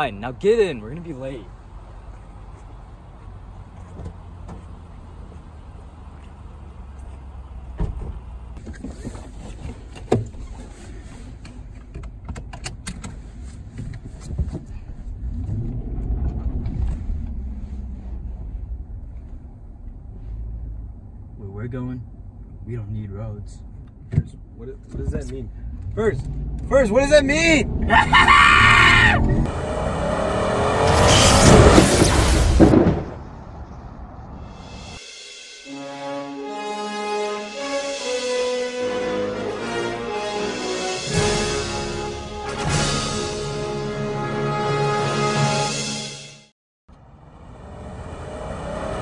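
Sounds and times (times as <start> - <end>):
loud thump: 7.8 - 8.3, 31.0 - 33.5
car engine accelerating: 14.8 - 21.7, 24.9 - 35.0, 46.9 - 49.0
loud rushing noise: 29.2 - 35.8, 47.1 - 49.0.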